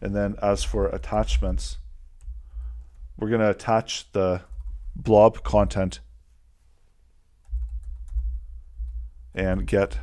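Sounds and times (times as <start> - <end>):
typing on computer keyboard: 7.4 - 9.0.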